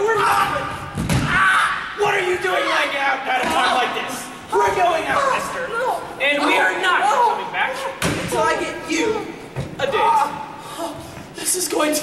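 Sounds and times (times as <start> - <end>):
raised voices: 0.0 - 12.0.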